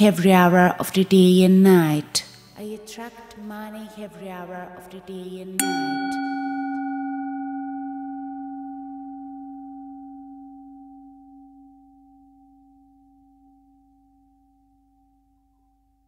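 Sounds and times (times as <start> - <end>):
singing bowl ringing: 5.6 - 15.9.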